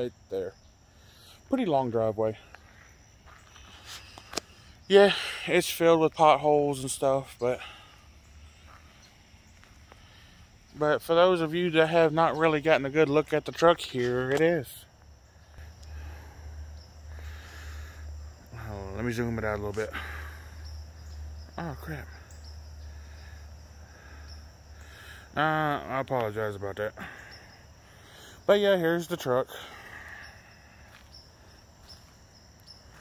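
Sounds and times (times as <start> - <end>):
crickets chirping: 0.0 - 33.0.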